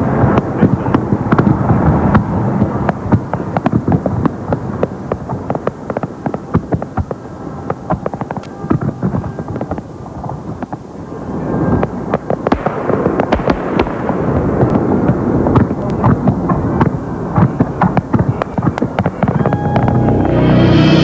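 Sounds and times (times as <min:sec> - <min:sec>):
fireworks bangs and crackles: 0:00.0 - 0:20.4.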